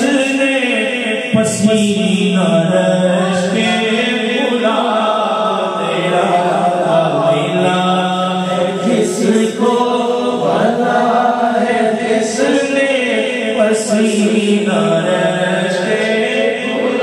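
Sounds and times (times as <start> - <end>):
man singing devotional song: 0.0 - 17.0.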